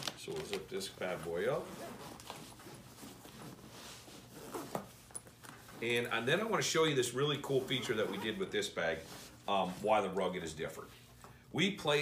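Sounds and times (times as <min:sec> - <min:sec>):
backpack zipper closing: 0:04.2 - 0:05.0, 0:07.6 - 0:08.5.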